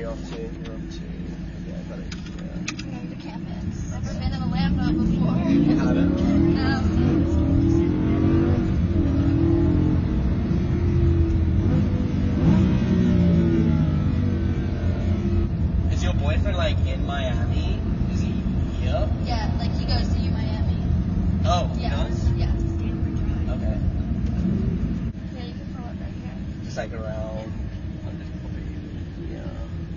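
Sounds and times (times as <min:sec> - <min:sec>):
people talking: 0:00.0 - 0:07.9, 0:15.9 - 0:20.8, 0:21.5 - 0:23.8, 0:25.3 - 0:29.8
car engine revving: 0:00.0 - 0:29.9.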